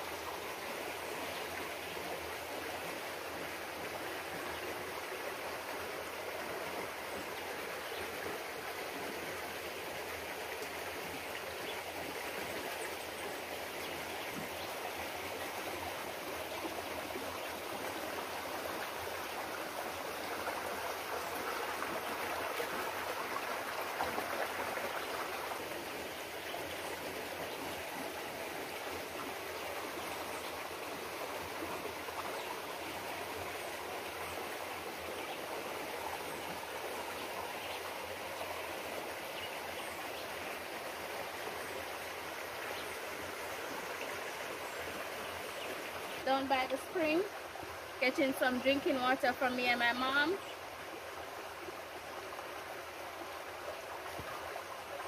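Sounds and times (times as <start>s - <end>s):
stream flowing over rocks: 0.0s - 55.0s.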